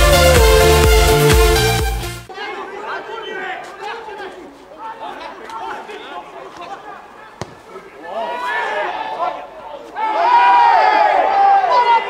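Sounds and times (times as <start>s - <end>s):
electronic music: 0.0s - 2.3s.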